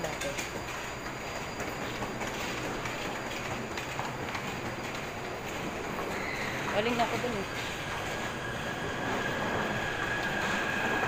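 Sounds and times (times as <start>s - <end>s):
footsteps on platform: 0.0s - 8.3s
metro train noise: 0.0s - 11.0s.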